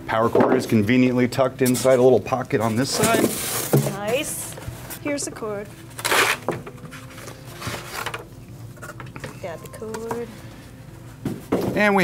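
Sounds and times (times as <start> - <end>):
packaging rustling: 5.9 - 8.3.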